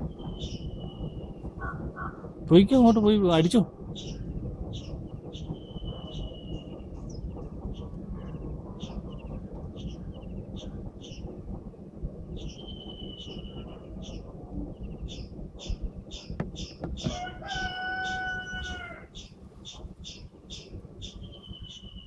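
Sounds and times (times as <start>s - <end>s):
bird chirping: 0.0s - 2.2s, 3.8s - 11.4s, 12.3s - 22.0s
wind buffeting microphone: 0.0s - 22.0s.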